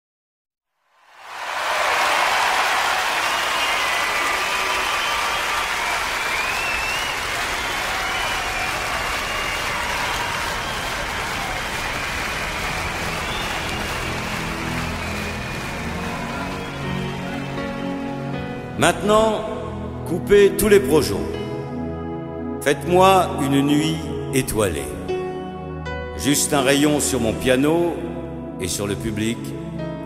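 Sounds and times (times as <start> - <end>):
audience applauding: 1.1 - 18.8
whistles: 3.0 - 17.5
soft music: 11.3 - 30.0.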